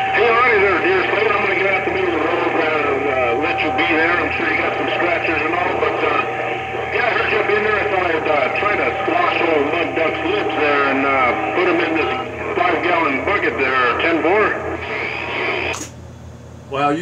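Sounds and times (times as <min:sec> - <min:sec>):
steady whistle tone: 0:00.0 - 0:15.6
garbled radio voices: 0:00.0 - 0:15.9
radio static: 0:00.0 - 0:16.0
low hum: 0:00.0 - 0:16.6.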